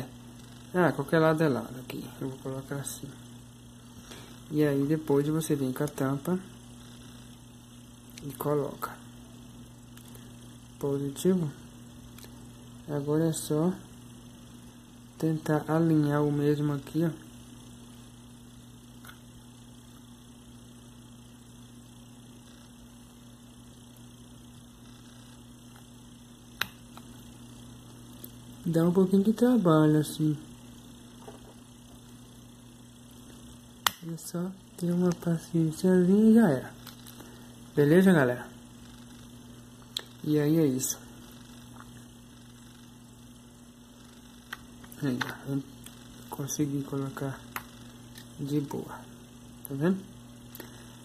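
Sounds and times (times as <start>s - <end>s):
mains hum: 0.0s - 51.0s
sharp click: 33.8s - 34.1s.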